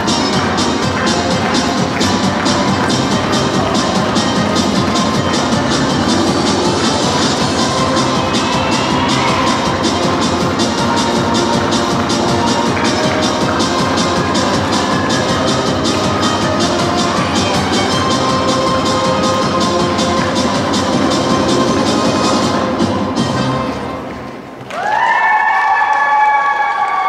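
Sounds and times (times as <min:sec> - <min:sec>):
music with fast beat: 0:00.0 - 0:23.6.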